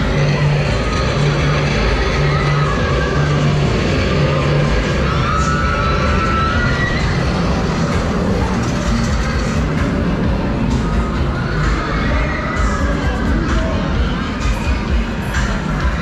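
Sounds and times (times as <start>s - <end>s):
crowd and ride noise: 0.0s - 16.0s
loud fairground music: 0.0s - 16.0s.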